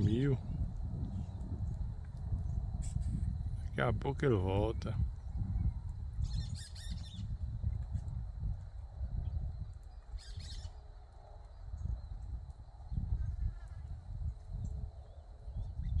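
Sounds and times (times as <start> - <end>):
low rumble: 0.0 - 10.7
small birds chirping: 4.4 - 8.2, 9.2 - 16.0.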